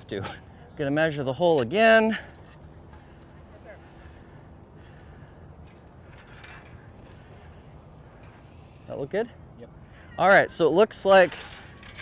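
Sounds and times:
faint distant voices: 0:02.1 - 0:12.0.

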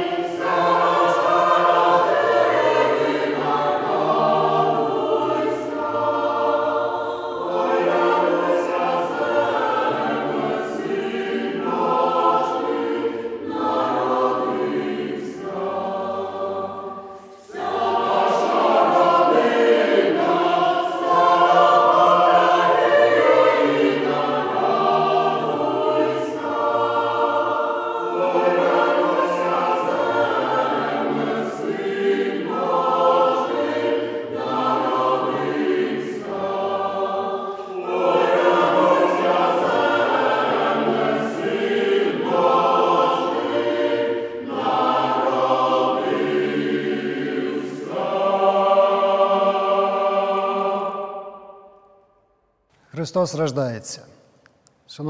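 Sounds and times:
choir singing a carol: 0:00.0 - 0:52.5.

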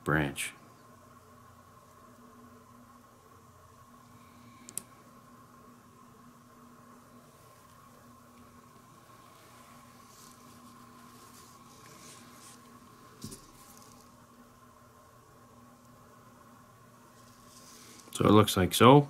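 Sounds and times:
faint steady hum: 0:00.0 - 0:19.0
small click: 0:04.7 - 0:04.9.

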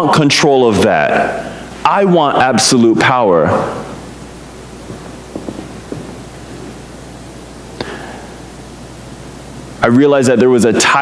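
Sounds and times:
low sound system hum: 0:00.0 - 0:11.0
steady hiss: 0:00.0 - 0:11.0.

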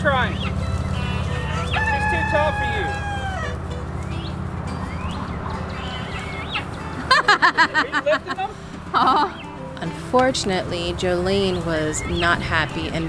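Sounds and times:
short rising chicken calls: 0:00.9 - 0:03.6
rooster crowing: 0:00.9 - 0:03.7.

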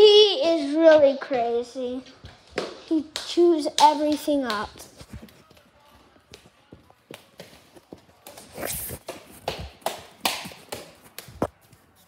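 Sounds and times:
dog paws tapping: 0:02.2 - 0:12.0.

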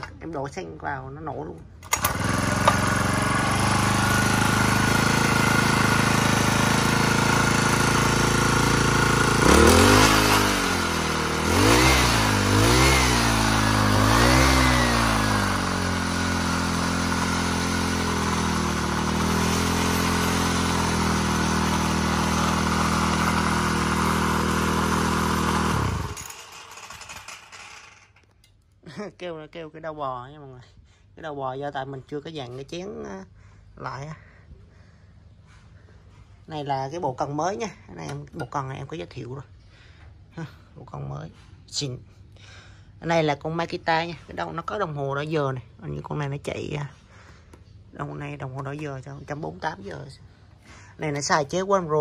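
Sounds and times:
brush cutter engine revving: 0:01.8 - 0:28.0.

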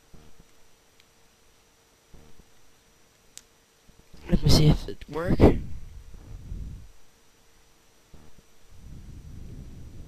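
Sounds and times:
low hum: 0:00.0 - 0:03.1, 0:03.9 - 0:10.0.

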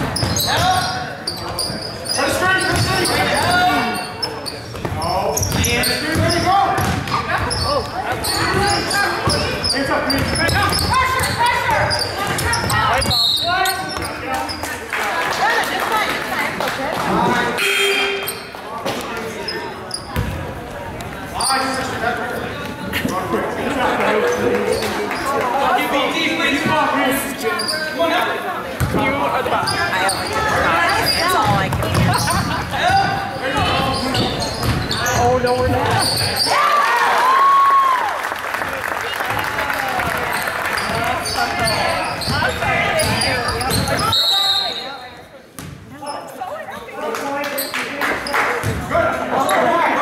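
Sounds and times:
basketball bouncing on wooden floor: 0:04.7 - 0:07.5, 0:31.4 - 0:36.1, 0:41.6 - 0:44.0
indistinct echoing voices: 0:20.7 - 0:36.7.

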